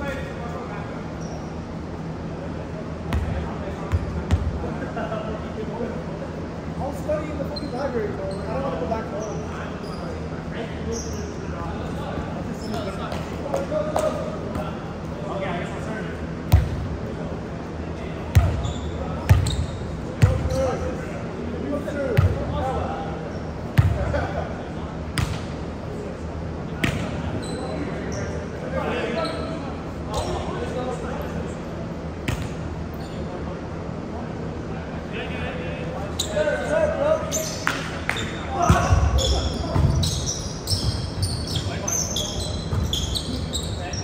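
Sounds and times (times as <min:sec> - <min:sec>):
steady low hum: 0:00.0 - 0:44.0
volleyball slaps in a gym: 0:03.0 - 0:04.9, 0:12.6 - 0:15.2, 0:16.4 - 0:17.3, 0:18.2 - 0:20.8, 0:22.0 - 0:22.7, 0:23.6 - 0:24.4, 0:25.0 - 0:25.8, 0:26.7 - 0:27.4, 0:32.2 - 0:33.0, 0:37.6 - 0:43.5.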